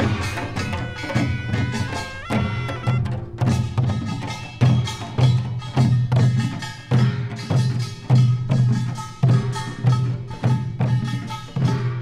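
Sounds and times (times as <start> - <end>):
shawm holding notes: 0.0 - 3.8
drum strokes: 0.0 - 12.0.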